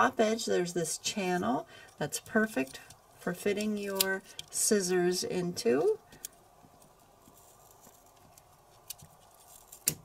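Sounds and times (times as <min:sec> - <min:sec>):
scissors snipping thread: 0:02.2 - 0:04.6.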